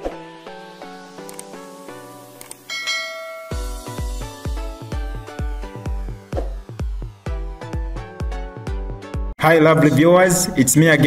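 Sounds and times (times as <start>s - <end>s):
notification bell chime: 2.7s - 4.2s
plucked intro music: 2.7s - 9.2s.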